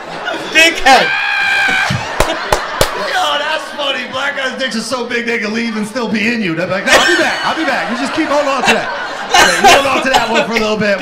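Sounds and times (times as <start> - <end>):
hand claps: 2.2 - 3.0.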